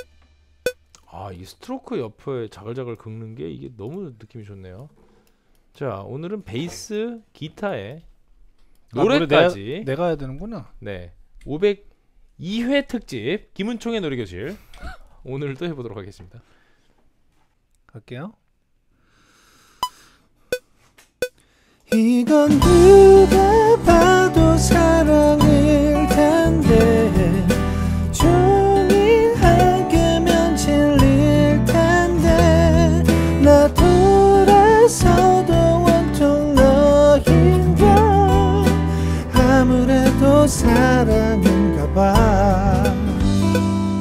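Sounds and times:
bass and guitar backing track: 0.0 - 0.3, 22.5 - 44.0
man singing with vibrato: 21.9 - 43.4.

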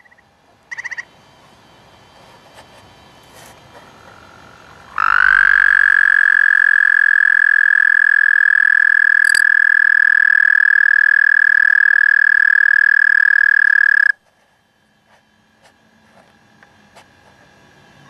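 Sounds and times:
toad trilling: 4.9 - 14.2.

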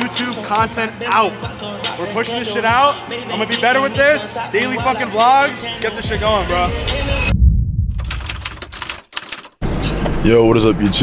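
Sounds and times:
rapid sharp clicks: 8.0 - 9.6.

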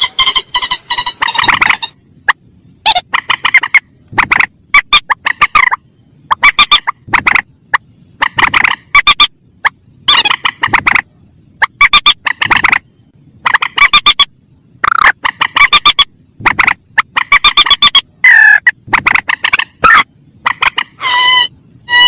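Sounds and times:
rails stuttering calls: 0.0 - 22.0.

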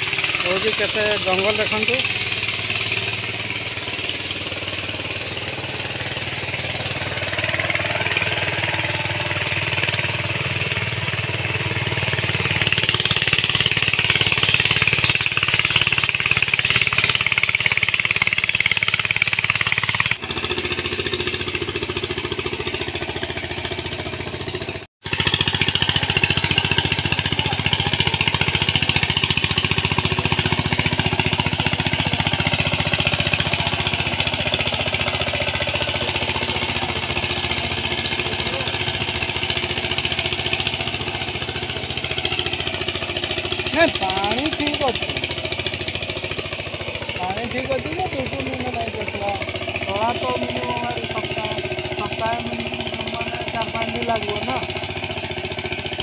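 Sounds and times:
diesel tiller engine running: 0.0 - 56.0.

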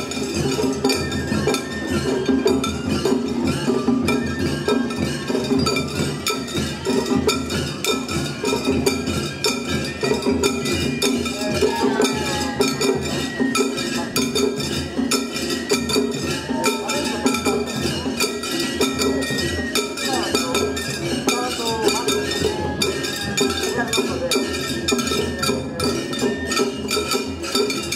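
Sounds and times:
metal cymbals clanging: 0.0 - 27.9
taiko drums beating: 0.0 - 27.9.

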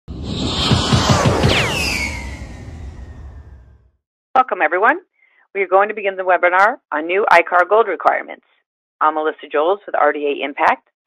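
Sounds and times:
electronic falling tone sting: 0.1 - 3.9.

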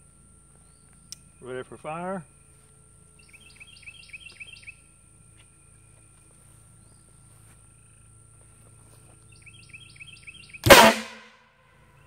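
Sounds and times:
bird chirping: 0.6 - 8.2, 9.2 - 10.7.

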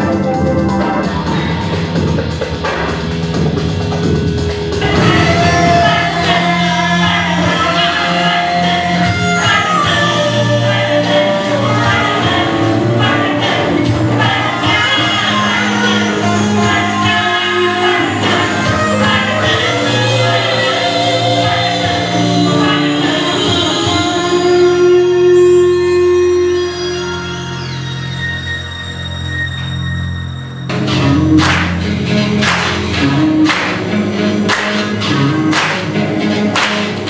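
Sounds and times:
electric guitar sustained notes: 3.7 - 37.0.

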